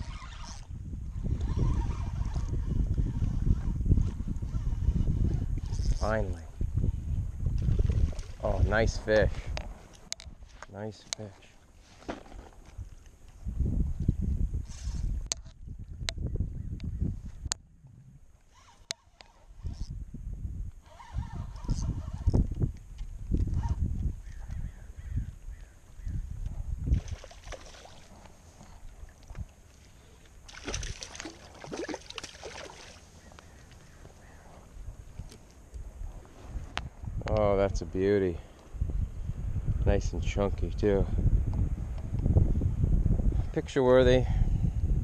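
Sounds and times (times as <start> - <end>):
fish splashing and thrashing: 26.9 - 29.2, 30.2 - 33.2.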